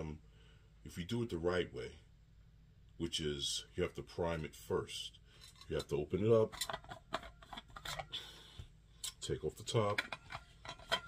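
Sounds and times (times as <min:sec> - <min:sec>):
thermos lid twisting off: 0:06.5 - 0:08.2, 0:09.8 - 0:11.0.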